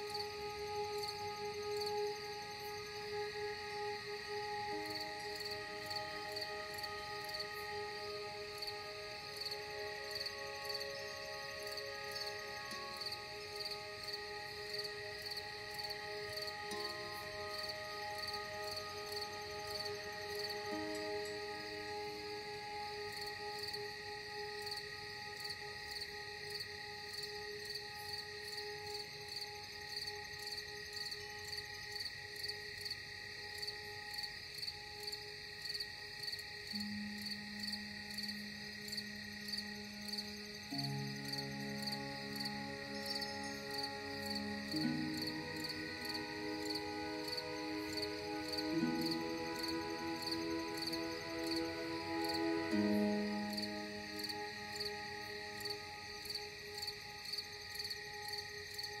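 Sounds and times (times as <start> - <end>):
low held chord: 0.0 - 31.5, 36.7 - 59.0
crickets chirping: 0.0 - 59.0
slow ambient music: 0.0 - 59.0.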